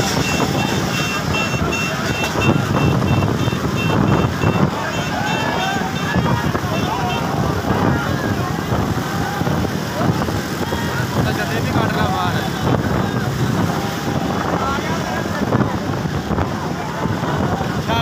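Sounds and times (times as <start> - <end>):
motorbike engines rumbling: 0.0 - 18.0
wind buffeting microphone: 0.0 - 18.0
men shouting: 0.4 - 18.0.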